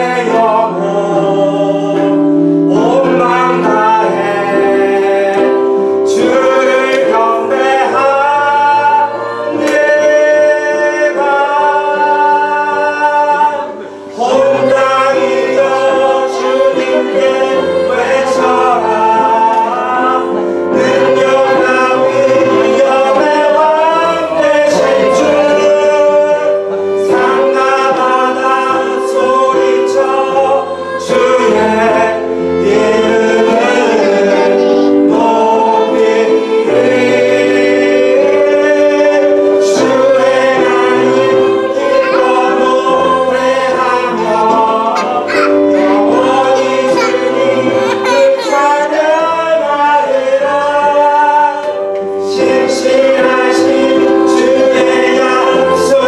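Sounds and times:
group singing together: 0.0s - 56.0s
keyboard: 0.0s - 56.0s
violin: 1.7s - 56.0s.

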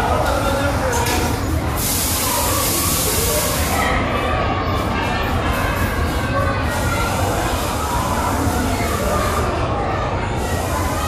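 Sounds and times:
faint voices in a hall: 0.0s - 11.0s.

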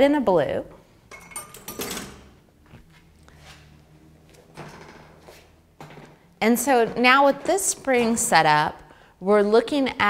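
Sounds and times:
low steady room hum: 0.0s - 10.0s.

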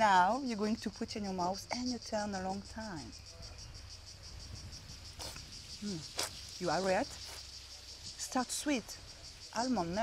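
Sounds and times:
cicadas buzzing: 0.0s - 10.0s.

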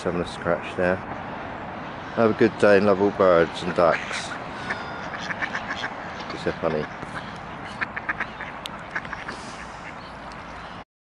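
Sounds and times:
outdoor background noise: 0.0s - 10.8s
ducks quacking: 2.0s - 10.8s.

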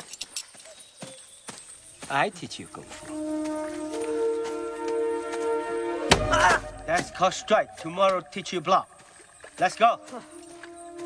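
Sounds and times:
horse hooves clopping: 0.0s - 11.0s.

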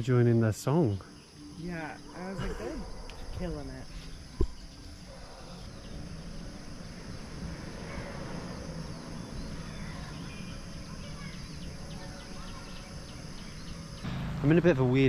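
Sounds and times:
cicadas and crickets chirping: 0.0s - 15.0s.

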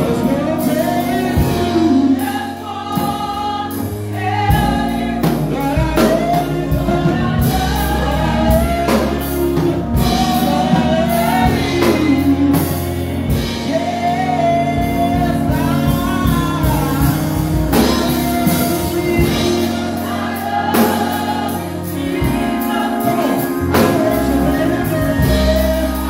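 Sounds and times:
lead singer: 0.0s - 26.0s
steady drum beat: 0.0s - 26.0s
sustained bass: 0.0s - 26.0s.

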